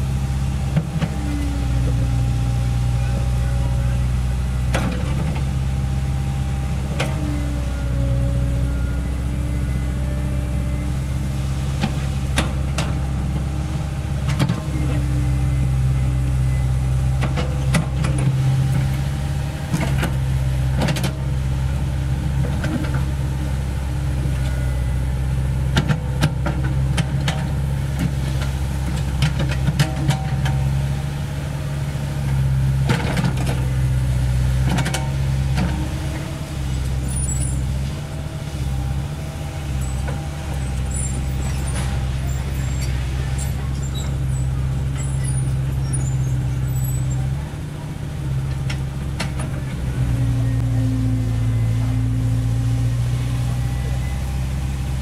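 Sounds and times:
excavator diesel engine running: 0.0s - 55.0s.

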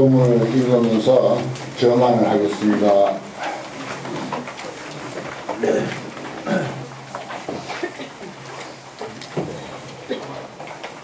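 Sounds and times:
man murmuring: 5.6s - 6.8s.

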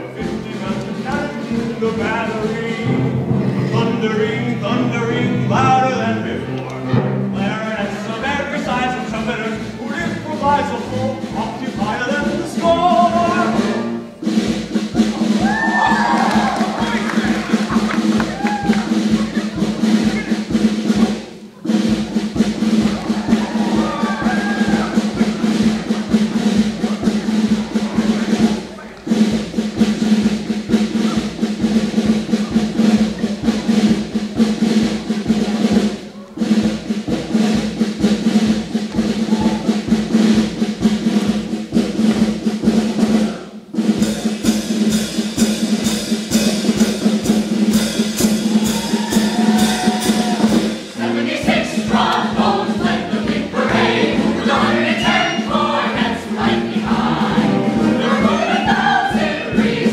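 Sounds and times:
bass drum: 0.0s - 59.9s
snare drum rolls: 0.0s - 59.9s
sustained musical accompaniment: 0.0s - 59.9s.

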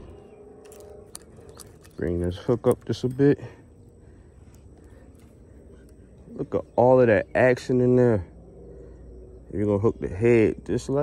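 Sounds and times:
fishing tackle clicks and scrapes: 0.6s - 3.3s.

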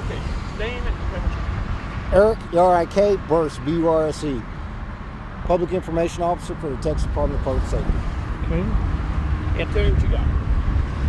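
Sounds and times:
highway traffic rumble: 0.0s - 11.0s.

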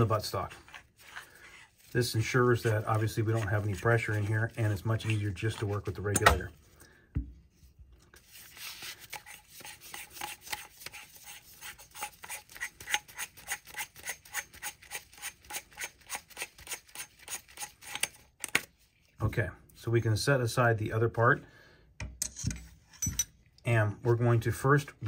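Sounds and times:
metal threads rasping: 22.2s - 23.3s.

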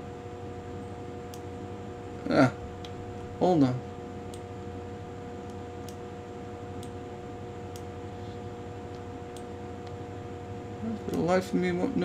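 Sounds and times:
steady hum: 0.0s - 12.0s.

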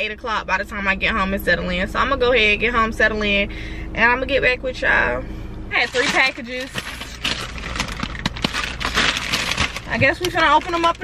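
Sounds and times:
plastic bag crinkling: 5.8s - 11.0s.

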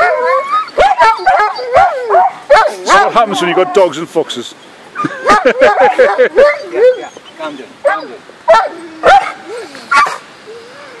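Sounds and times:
dog whining: 0.0s - 3.8s, 5.0s - 11.0s
small dog yapping: 7.8s - 10.2s.

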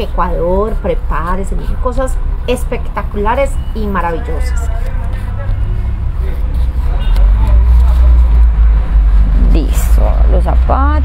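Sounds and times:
faint voices: 2.9s - 9.0s.

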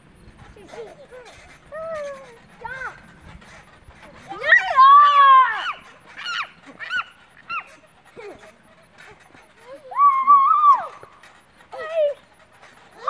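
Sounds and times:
young children squealing: 4.2s - 8.5s, 9.6s - 12.2s.

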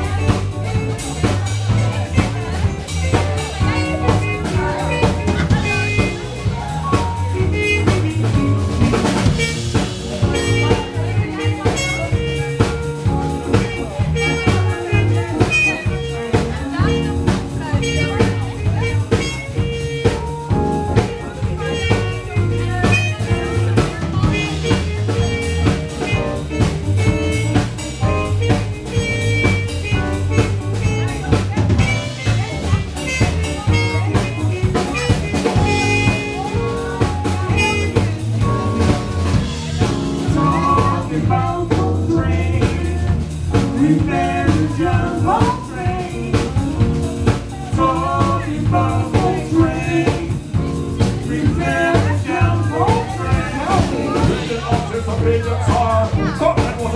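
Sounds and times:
bass: 0.0s - 56.9s
drum kit steady beat: 0.0s - 56.9s
trumpet melody: 0.0s - 56.9s.

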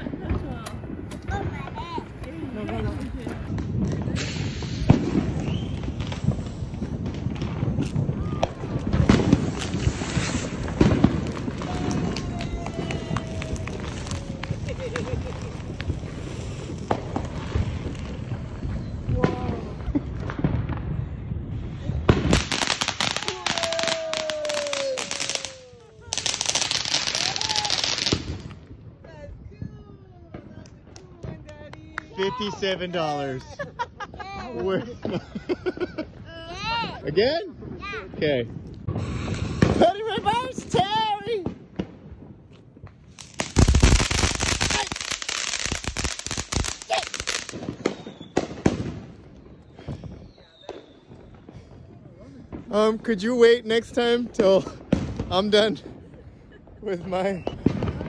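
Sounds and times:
onlookers' voices: 0.0s - 35.1s
firework fountain crackling: 0.0s - 58.0s
firework hissing spurts: 4.0s - 20.4s, 21.6s - 28.6s, 38.8s - 40.1s, 43.1s - 49.0s.

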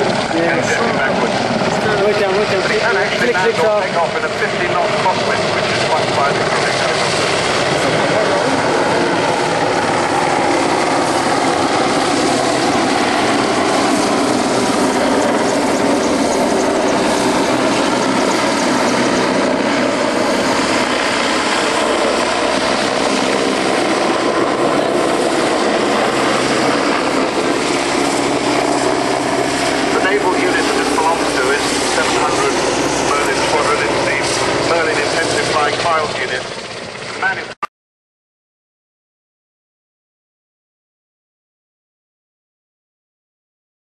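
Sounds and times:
helicopter flying close by: 0.0s - 37.6s.

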